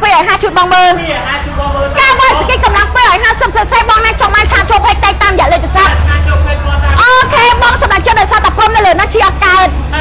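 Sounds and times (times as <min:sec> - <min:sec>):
woman talking: 0:00.0 - 0:01.0, 0:02.0 - 0:05.9, 0:07.0 - 0:09.8.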